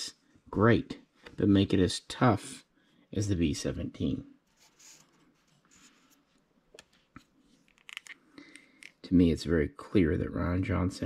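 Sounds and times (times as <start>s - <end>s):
small plastic clicks: 7.7s - 9.0s.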